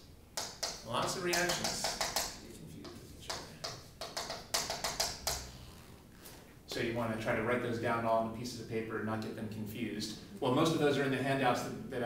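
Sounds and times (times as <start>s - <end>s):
chalk tapping and scratching: 0.0s - 5.5s.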